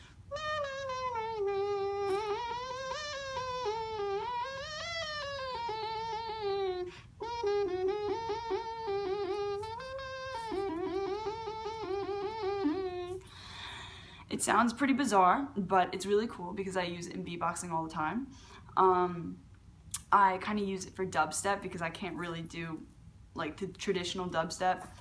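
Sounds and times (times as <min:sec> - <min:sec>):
beatbox kazoo-like hum: 0:00.0 - 0:13.9.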